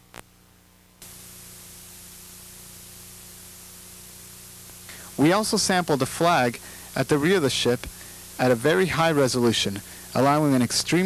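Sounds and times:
low electrical hum: 0.0s - 11.0s
tape hiss: 0.0s - 11.0s.

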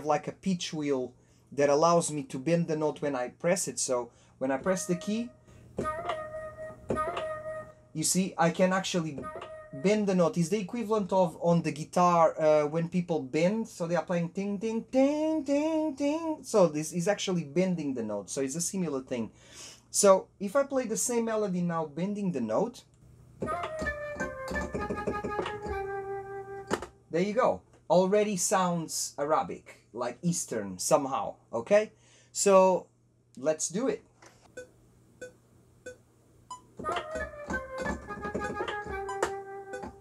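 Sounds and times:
synth flute notes with pitch bend: 4.6s - 7.9s, 9.1s - 10.2s, 23.4s - 26.8s, 36.8s - 40.0s.

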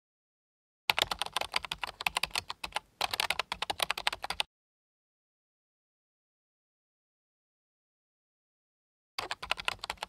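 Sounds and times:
computer keyboard typing: 0.9s - 4.5s, 9.2s - 10.0s.

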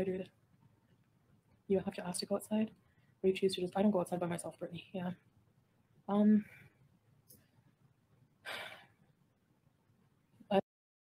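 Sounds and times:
woman exhaling noisily: 8.5s - 8.9s.

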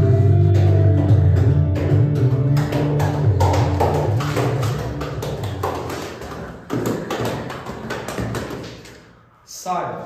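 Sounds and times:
background music: 0.0s - 6.1s
sharp taps and thumps: 1.4s - 9.0s.

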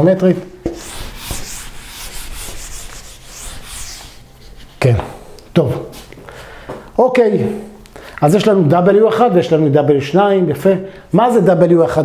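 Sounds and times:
eraser rubbing on whiteboard: 0.7s - 4.8s.

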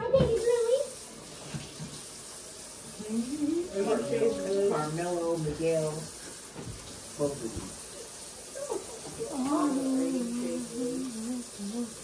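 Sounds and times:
kitchen tap running: 0.0s - 12.0s.

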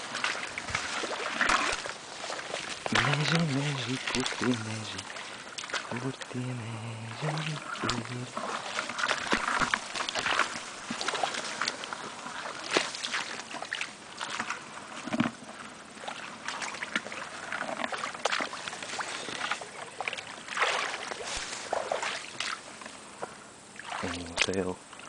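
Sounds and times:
rustling reeds and grass: 0.0s - 25.0s
splashing through shallow water: 0.0s - 25.0s.

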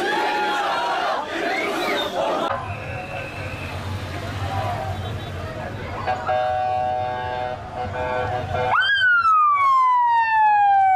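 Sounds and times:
police car siren: 8.6s - 10.9s.

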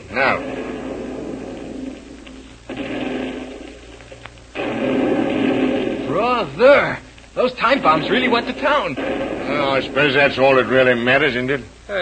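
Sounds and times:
bomb explosions: 0.0s - 11.5s.

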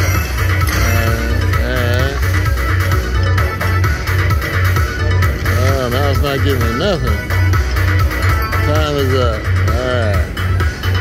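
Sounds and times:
looping electronic slot machine music: 0.0s - 11.0s
man speaking: 0.7s - 2.4s, 5.5s - 7.2s, 8.6s - 10.3s.

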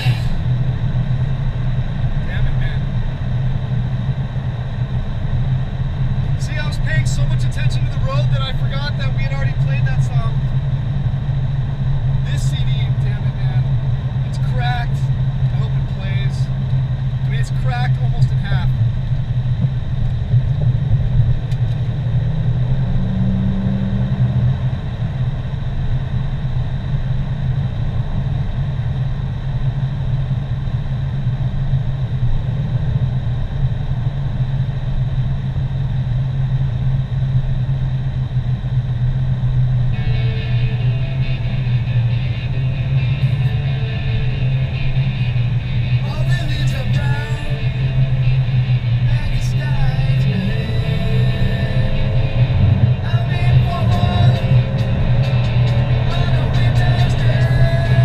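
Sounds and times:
person speaking: 0.0s - 0.4s
car engine and tyres drone: 0.0s - 58.0s.

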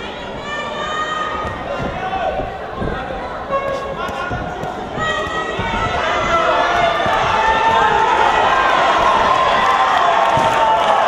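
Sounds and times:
spectators shouting: 0.0s - 11.0s.

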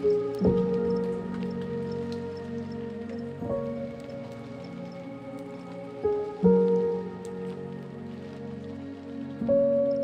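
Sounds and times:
rain: 0.0s - 10.0s
slow ambient music chords: 0.0s - 10.0s.

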